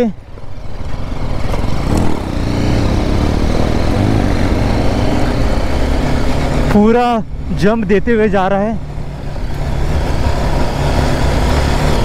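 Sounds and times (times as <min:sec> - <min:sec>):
motorcycle engine revving: 0:00.0 - 0:08.2, 0:08.8 - 0:12.0.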